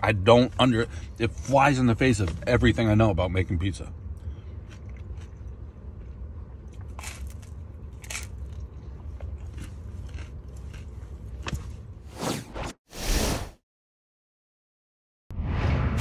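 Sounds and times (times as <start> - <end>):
man chewing crispy pizza: 4.1 - 11.8.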